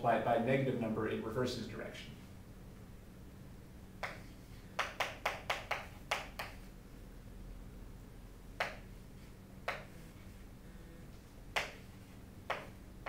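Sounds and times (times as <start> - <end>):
chalk tapping on a chalkboard: 4.0 - 6.7, 8.6 - 8.9, 9.6 - 10.0, 11.6 - 12.8.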